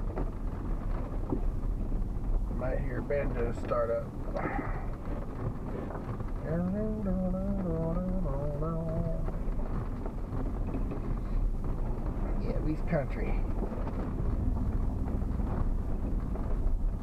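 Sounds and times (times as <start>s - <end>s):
truck engine and road noise: 0.0s - 17.0s.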